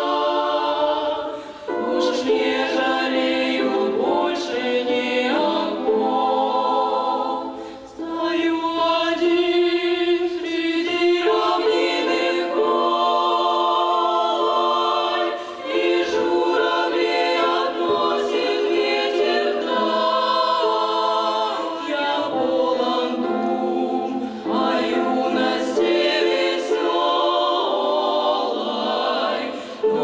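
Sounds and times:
women's ensemble singing in harmony: 0.0 - 30.0.

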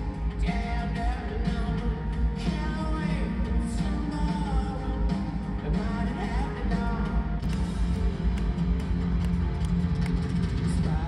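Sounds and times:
rock band over pa: 0.0 - 11.0.

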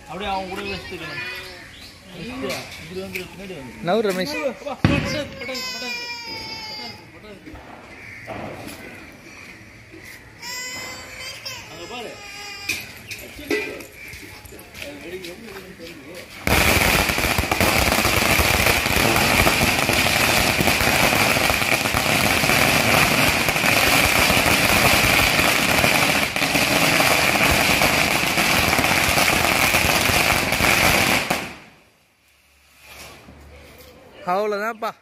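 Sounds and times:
firecracker string crackling: 15.2 - 31.9.

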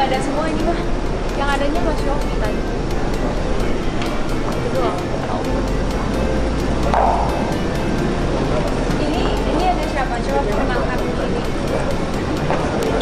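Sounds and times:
indistinct voices: 0.0 - 13.0
music playing: 0.0 - 13.0.

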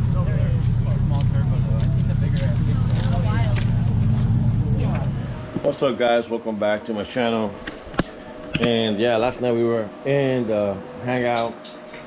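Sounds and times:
car engine idling: 0.0 - 5.6
people talking: 0.0 - 7.6, 8.6 - 11.6.

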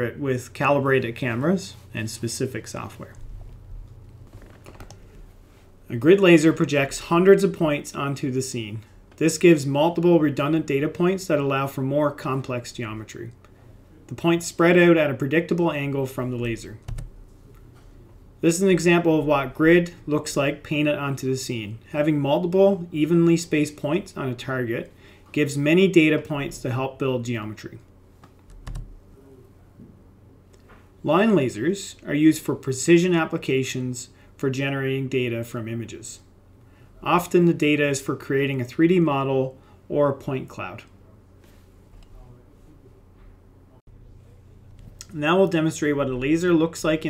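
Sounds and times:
low steady hum: 0.0 - 47.0
computer keyboard clicks: 16.8 - 17.1.

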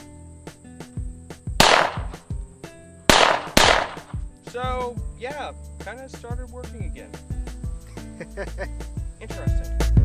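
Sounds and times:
background music with steady beat: 0.0 - 10.0
pistol shots: 1.6 - 2.2, 3.1 - 4.2.

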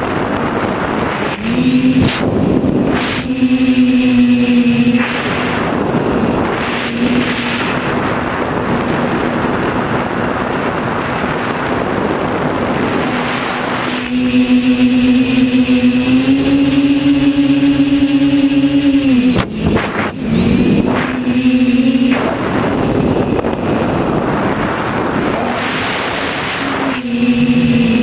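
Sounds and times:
drone motor buzzing whine: 0.0 - 28.0
propellers rushing whoosh: 0.0 - 28.0.

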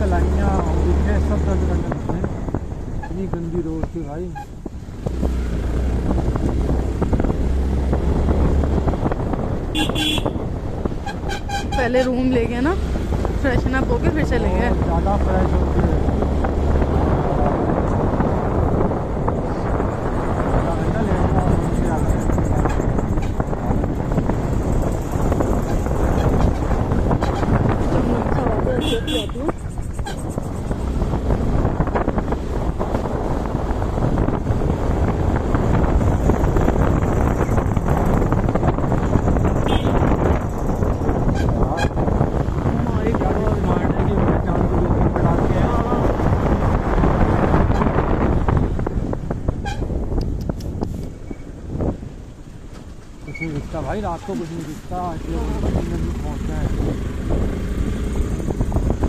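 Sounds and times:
motorcycle engine: 0.0 - 59.0
wind noise on microphone: 0.0 - 59.0.

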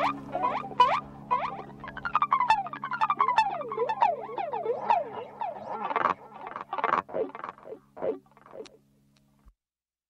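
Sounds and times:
synthesizer lead swooping in pitch: 0.0 - 6.8
held low notes: 0.0 - 8.8.

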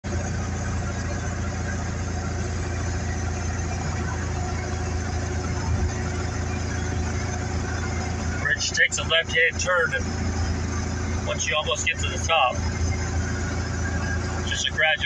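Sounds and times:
car interior road noise: 0.0 - 15.0.

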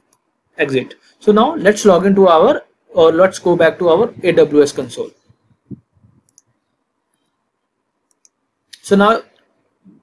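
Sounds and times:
person speaking: 0.5 - 6.4
computer mouse clicks: 6.2 - 7.3, 8.0 - 8.8.

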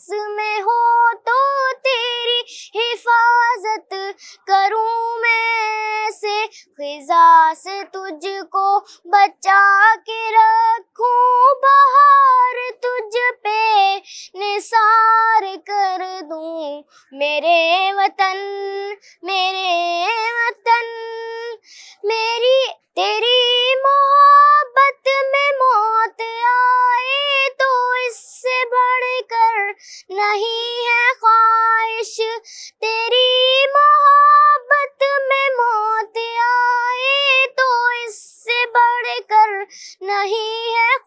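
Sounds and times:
boy singing: 0.0 - 41.0.

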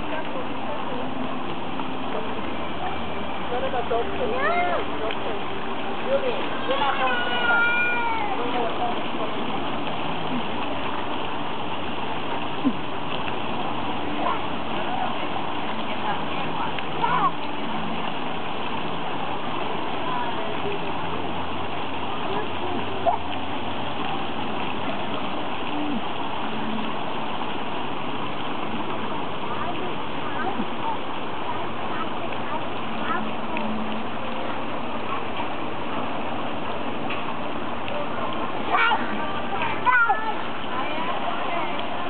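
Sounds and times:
fountain splashing: 0.0 - 42.0
toddler squealing: 6.6 - 8.4.

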